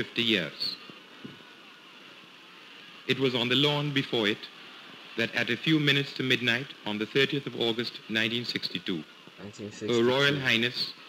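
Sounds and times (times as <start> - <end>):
faint steady hiss: 0.0 - 11.0.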